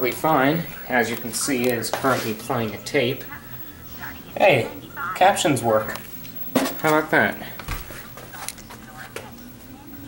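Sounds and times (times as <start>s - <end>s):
faint voices from television speaker: 0.0s - 10.0s
low steady hum: 0.0s - 10.0s.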